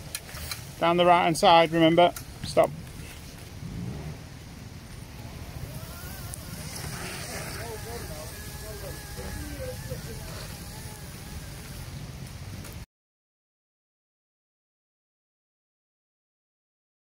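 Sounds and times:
wind noise on microphone: 2.1 - 12.8.

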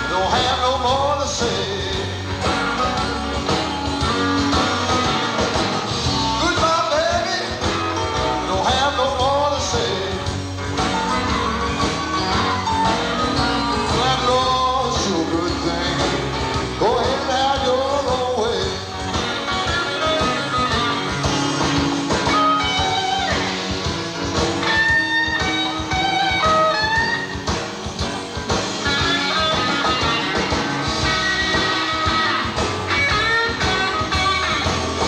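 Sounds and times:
blues-rock band playing: 0.0 - 35.0
lead electric guitar lines: 0.0 - 35.0.

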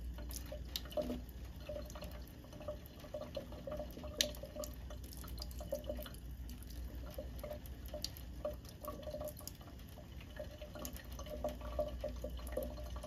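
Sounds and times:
faucet water trickling into sink: 0.0 - 13.0
water dripping plinks: 0.0 - 13.0.

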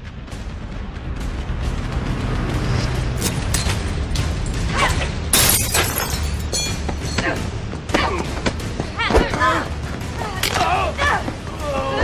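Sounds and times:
low film music: 0.0 - 12.0
glass shattering: 5.3 - 6.8
glass pieces ringing: 5.4 - 6.8.

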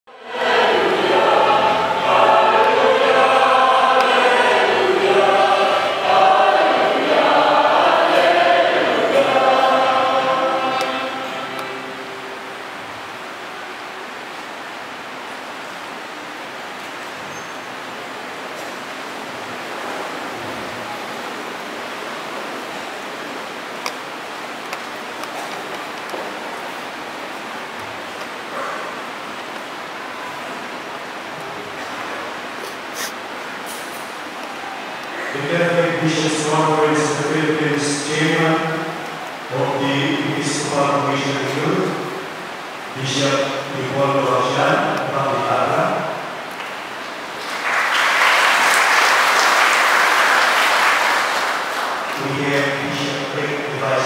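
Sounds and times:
choir singing: 0.1 - 14.2, 34.8 - 46.3
room hiss: 0.1 - 54.0.

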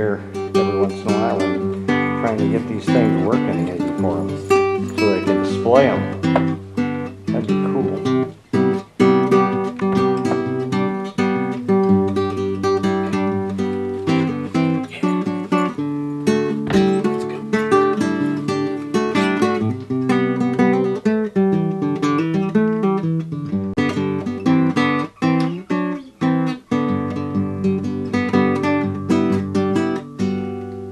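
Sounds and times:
acoustic guitar strumming: 0.0 - 30.9.

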